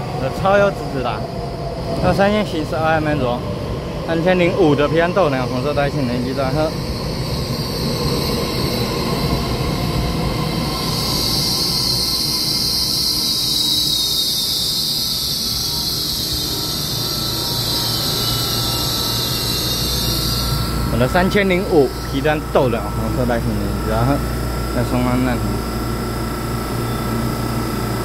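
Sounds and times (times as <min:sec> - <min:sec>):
high-pitched train squeal: 0:00.0 - 0:28.0
train rumbling: 0:00.0 - 0:28.0.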